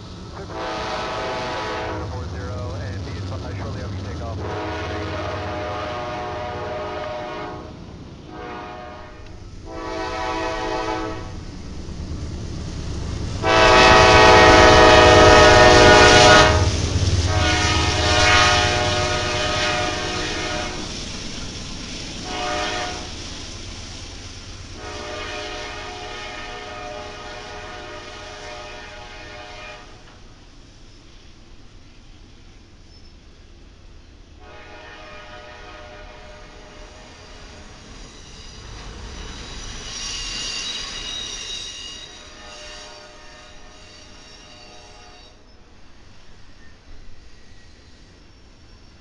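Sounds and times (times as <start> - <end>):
train rumbling past: 0.0 - 49.0
train air horn blasts: 0.4 - 2.5, 4.3 - 11.4, 13.4 - 20.9, 22.2 - 23.2, 24.8 - 30.0, 34.4 - 37.0, 42.0 - 45.4.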